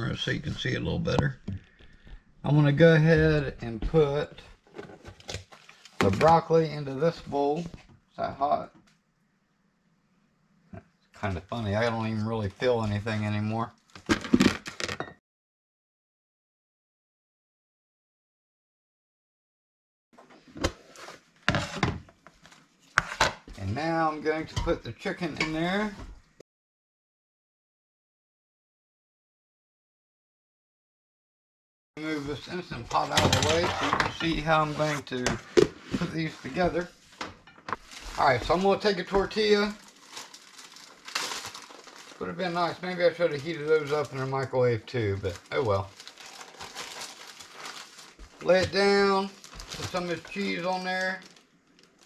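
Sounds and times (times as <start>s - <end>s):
plastic bag crinkling: 37.8s - 52.0s.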